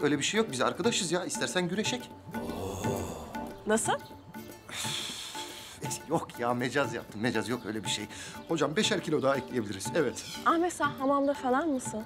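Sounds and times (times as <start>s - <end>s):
background music: 0.0s - 12.0s
man exhaling heavily: 2.4s - 3.5s.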